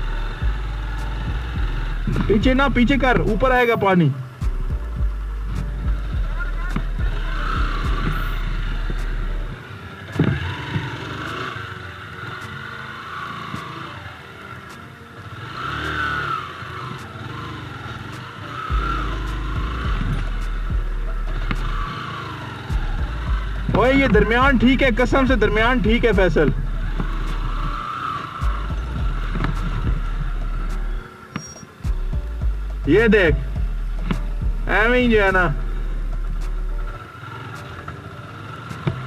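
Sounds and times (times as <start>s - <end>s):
motorcycle engine revving: 0.0s - 39.0s.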